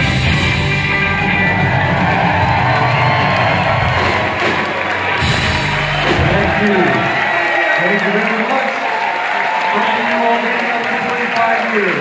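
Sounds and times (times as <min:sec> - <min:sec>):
live rock band playing: 0:00.0 - 0:07.3
audience cheering: 0:00.8 - 0:12.0.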